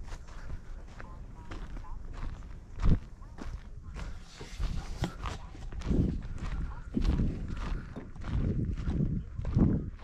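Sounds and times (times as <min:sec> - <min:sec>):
footsteps thumping and crunching: 0:00.0 - 0:10.0.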